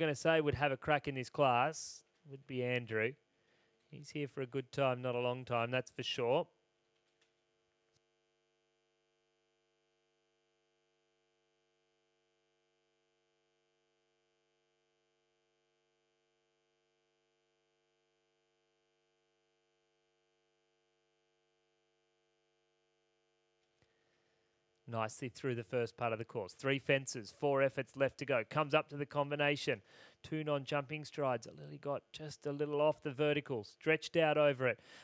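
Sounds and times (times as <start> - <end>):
faint steady hum: 1.4 - 35.0.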